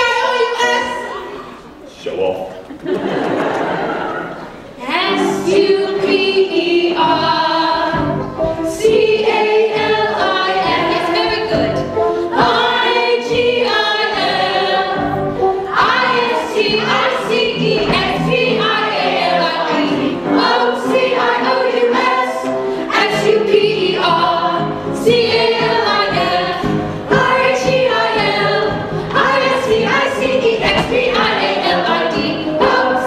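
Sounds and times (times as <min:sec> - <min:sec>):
chorus of mixed voices singing: 0:00.0 - 0:01.4, 0:03.0 - 0:33.0.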